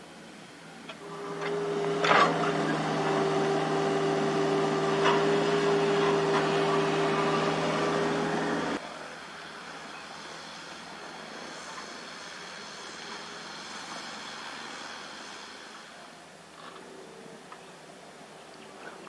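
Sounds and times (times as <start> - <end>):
faint high whine: 0.0 - 19.0
steady hiss: 0.0 - 19.0
excavator diesel engine drone: 0.8 - 16.4.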